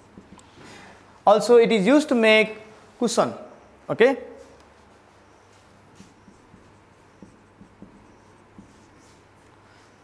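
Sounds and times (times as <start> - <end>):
marker scratching on whiteboard: 0.0 - 0.8, 4.8 - 10.0
marker tapping whiteboard: 0.0 - 0.8, 6.0 - 9.2.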